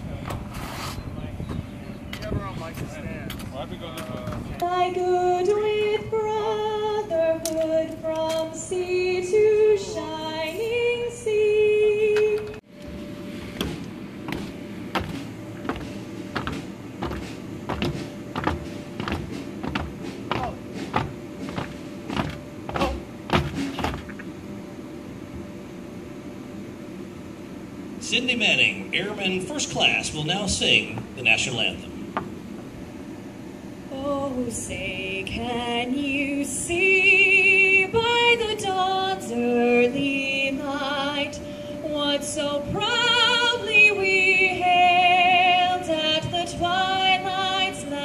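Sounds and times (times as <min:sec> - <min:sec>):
faint steady hum: 0:00.0 - 0:48.0
woman singing slow melody: 0:04.6 - 0:12.6, 0:33.9 - 0:48.0.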